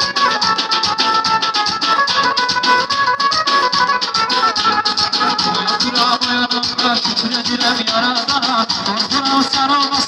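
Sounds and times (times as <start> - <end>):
button accordion melody: 0.0 - 10.0
fast even drumbeat: 0.0 - 10.0.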